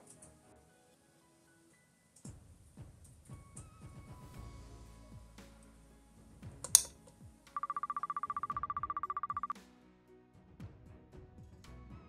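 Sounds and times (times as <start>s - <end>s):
background music: 0.0s - 12.0s
sharp click: 6.6s - 7.0s
fast-pulsing electronic beep: 7.6s - 9.6s.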